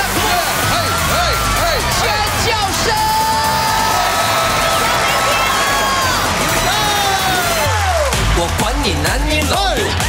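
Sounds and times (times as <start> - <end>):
audience screaming and cheering: 0.0 - 10.0
loud dance music: 0.0 - 10.0.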